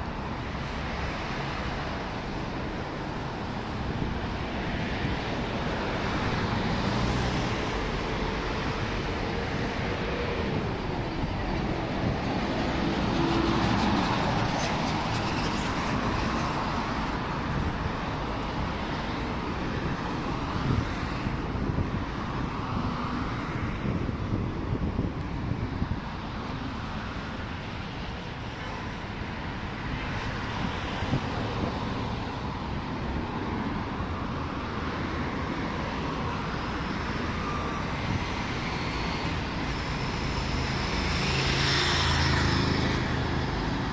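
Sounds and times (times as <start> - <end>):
city road traffic: 0.0 - 43.9.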